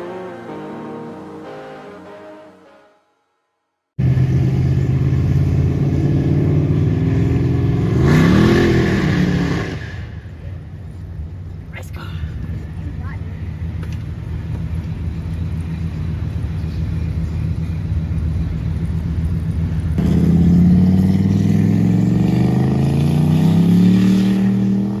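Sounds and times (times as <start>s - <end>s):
car engine accelerating: 12.4s - 25.0s.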